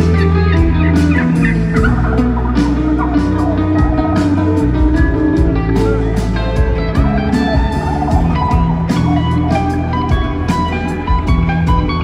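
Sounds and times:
live band music: 0.0 - 12.0.

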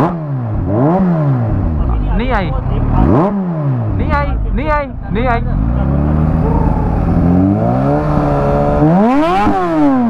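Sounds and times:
motorcycle engine revving: 0.0 - 10.0.

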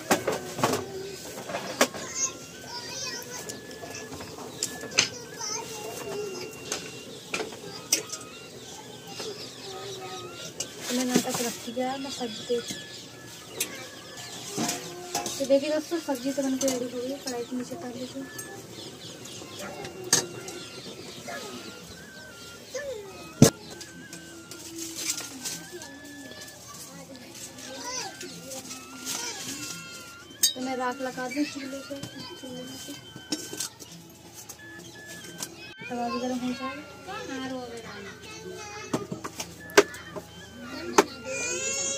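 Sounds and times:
birds chirping: 0.0 - 41.9.

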